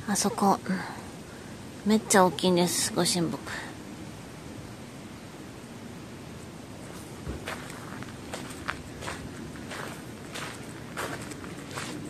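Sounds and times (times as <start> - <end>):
footsteps crunching on gravel: 6.9 - 12.0.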